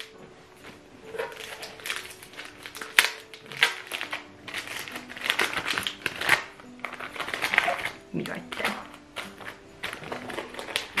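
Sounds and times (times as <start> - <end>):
wrapping paper tearing and crinkling: 1.0 - 11.0.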